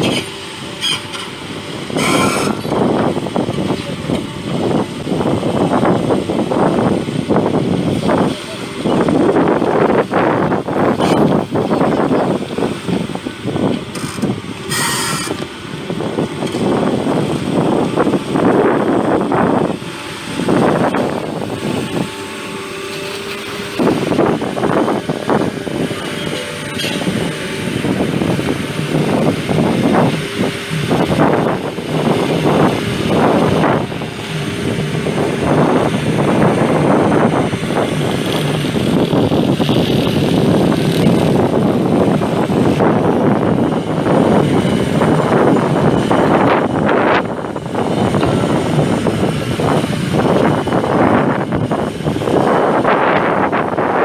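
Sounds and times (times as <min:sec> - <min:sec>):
excavator diesel engine running: 0:00.0 - 0:54.0
wind buffeting microphone: 0:00.0 - 0:54.0.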